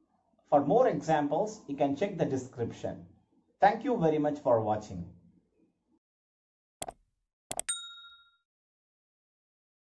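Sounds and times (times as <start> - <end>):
bright bell ding: 7.6 - 8.5.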